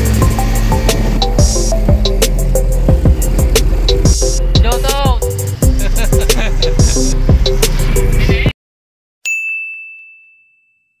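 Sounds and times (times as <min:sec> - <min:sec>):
bright bell-like ding: 0:09.3 - 0:11.0.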